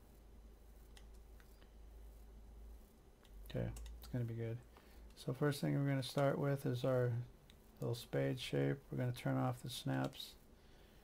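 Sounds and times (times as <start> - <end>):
low steady hum: 0.0 - 11.0
computer mouse clicks: 0.8 - 1.7, 3.2 - 4.2, 10.0 - 10.2.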